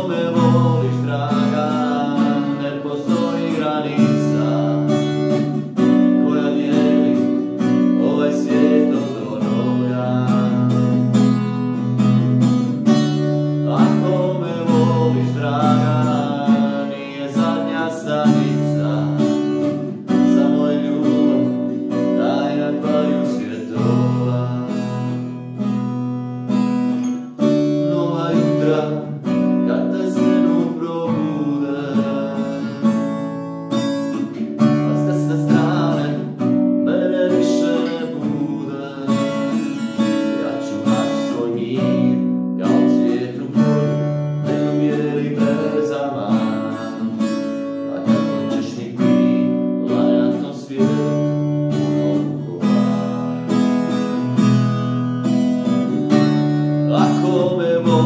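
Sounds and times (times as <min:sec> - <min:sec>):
man singing: 0:00.0 - 0:26.0, 0:26.6 - 0:58.0
acoustic guitar strumming: 0:00.0 - 0:58.0.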